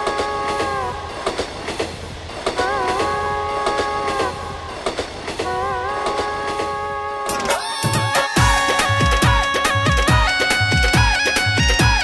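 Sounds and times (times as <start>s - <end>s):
low clattering beat: 0.0s - 12.0s.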